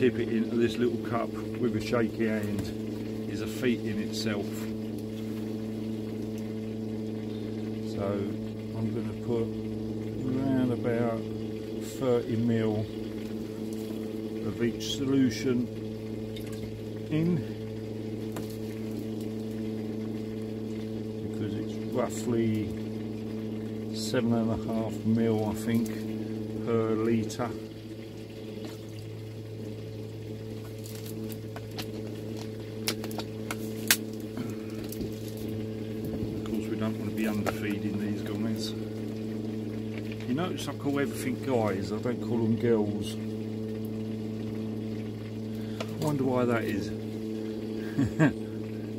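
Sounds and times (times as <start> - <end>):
low machine hum: 0.0 - 48.9.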